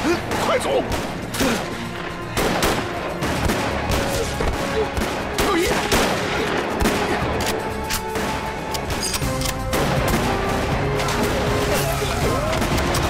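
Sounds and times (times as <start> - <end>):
dramatic score: 0.0 - 13.0
rifle gunfire: 2.4 - 10.8.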